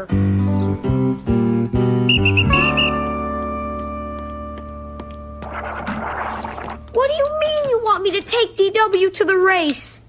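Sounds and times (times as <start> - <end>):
whistle toots: 2.1 - 3.1.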